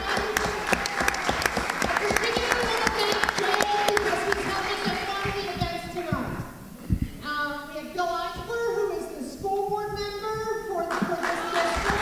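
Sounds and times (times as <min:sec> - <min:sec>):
audience applauding: 0:00.0 - 0:05.9, 0:10.9 - 0:12.0.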